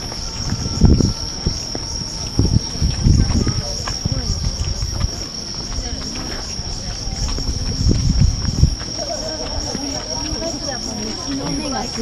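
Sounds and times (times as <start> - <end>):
bustle of people moving: 0.0 - 12.0
insects chirring: 0.0 - 12.0.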